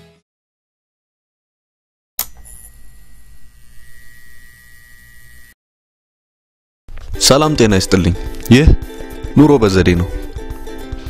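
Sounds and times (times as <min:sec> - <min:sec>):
electrical hum with high whine: 0:02.2 - 0:05.6.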